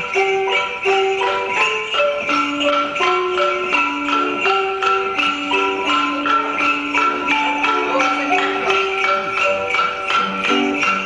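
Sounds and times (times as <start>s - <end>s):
lively piano tune: 0.0s - 11.0s.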